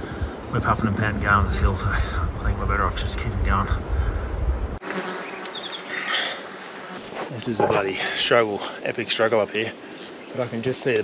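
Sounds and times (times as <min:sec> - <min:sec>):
low rumble: 0:00.0 - 0:04.8
flies buzzing: 0:04.8 - 0:10.4.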